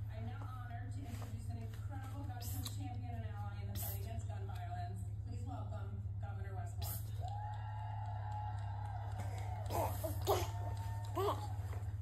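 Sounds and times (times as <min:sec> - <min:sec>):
baby vocalizing: 0:09.2 - 0:11.6.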